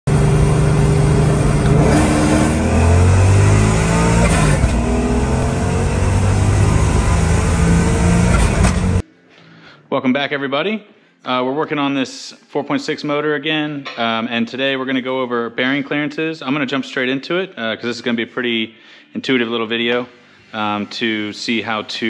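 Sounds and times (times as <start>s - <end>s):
car engine revving: 0.0s - 9.0s.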